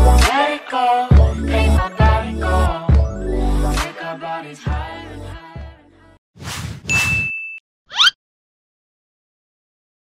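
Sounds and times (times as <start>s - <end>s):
quick swishes: 6.4s - 7.3s
high ding: 6.9s - 7.6s.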